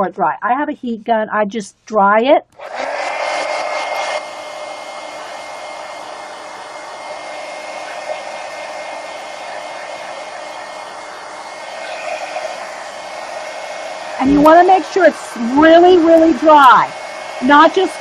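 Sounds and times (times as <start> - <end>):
heat gun blowing: 2.5 - 18.0.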